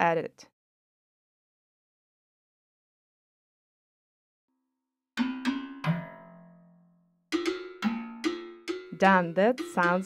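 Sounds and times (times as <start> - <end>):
plucked twangy synth notes: 5.2 - 10.0.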